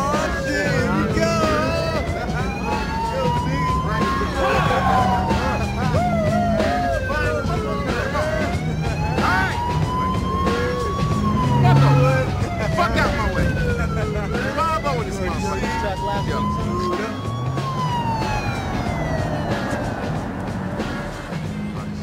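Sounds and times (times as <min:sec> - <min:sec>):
car engine running: 0:00.0 - 0:22.0
police siren wailing: 0:00.0 - 0:22.0.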